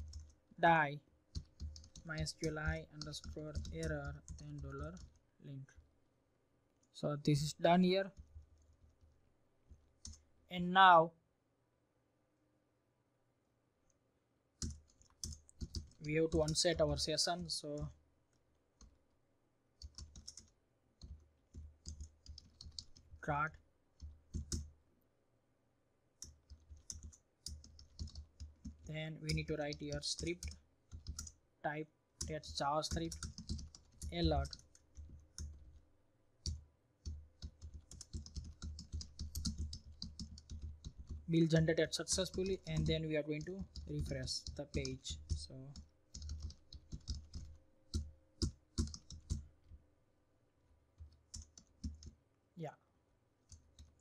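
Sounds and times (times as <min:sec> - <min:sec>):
computer keyboard typing: 0:00.0 - 0:00.4, 0:01.3 - 0:05.2, 0:10.0 - 0:10.2, 0:14.6 - 0:17.9, 0:19.8 - 0:23.2, 0:24.0 - 0:24.7, 0:26.2 - 0:31.4, 0:32.2 - 0:35.8, 0:36.4 - 0:49.8, 0:51.0 - 0:52.2, 0:53.5 - 0:54.0.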